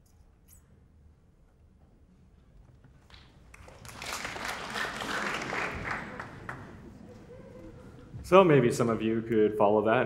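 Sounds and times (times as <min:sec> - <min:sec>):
audience applauding: 0:03.1 - 0:07.3.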